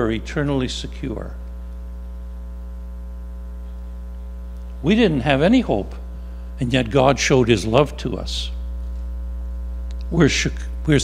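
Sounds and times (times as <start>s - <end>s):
man's voice: 0.0s - 1.4s, 4.8s - 6.0s, 6.6s - 8.6s, 10.1s - 11.0s
electrical mains hum: 0.0s - 11.0s.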